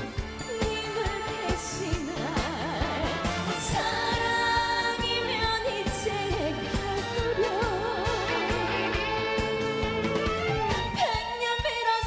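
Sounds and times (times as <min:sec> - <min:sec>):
band with steady drum beat: 0:00.0 - 0:12.0
woman singing with vibrato: 0:00.4 - 0:10.1, 0:10.9 - 0:12.0.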